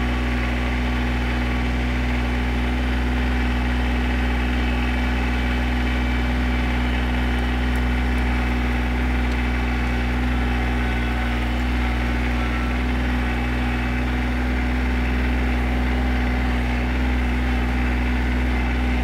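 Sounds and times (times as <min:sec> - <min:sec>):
tractor diesel engine running: 0:00.0 - 0:19.0.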